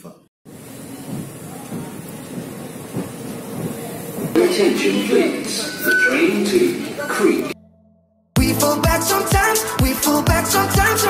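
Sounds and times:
escalator rumbling: 0.5s - 7.6s
faint knocks: 0.9s - 4.4s.

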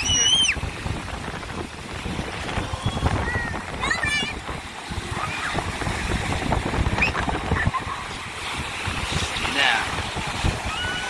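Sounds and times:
ocean surf breaking: 0.0s - 11.0s
wind buffeting microphone: 0.0s - 11.0s.

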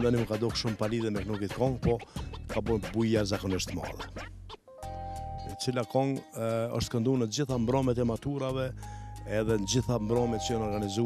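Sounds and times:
man talking: 0.0s - 4.0s, 5.5s - 11.0s
background music: 0.0s - 11.0s.

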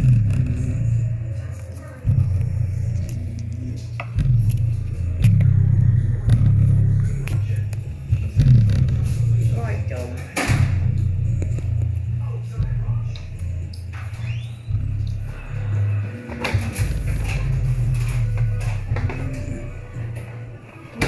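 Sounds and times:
bass-heavy music from loudspeaker: 0.0s - 21.0s.

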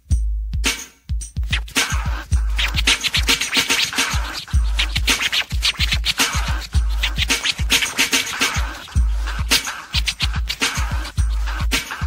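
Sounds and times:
drum beat: 0.0s - 12.0s
turntable scratching: 1.4s - 12.0s.

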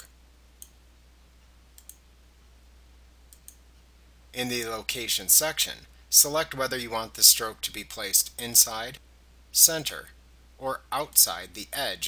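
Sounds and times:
computer mouse clicks: 1.8s - 2.0s, 3.3s - 3.6s.

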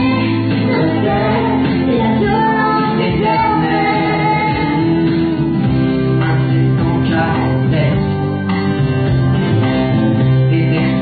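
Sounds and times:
pop ballad duet singing: 0.0s - 8.9s
instrumental accompaniment: 0.0s - 11.0s.

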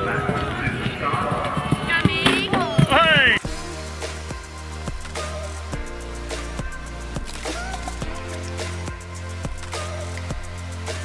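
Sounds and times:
horse galloping on grass: 0.0s - 3.5s
people's voices: 0.0s - 11.0s
music with a steady beat: 3.2s - 11.0s.

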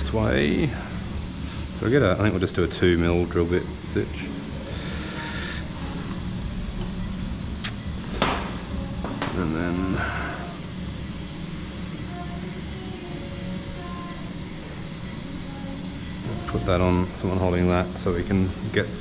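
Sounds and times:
background hum: 0.0s - 19.0s.

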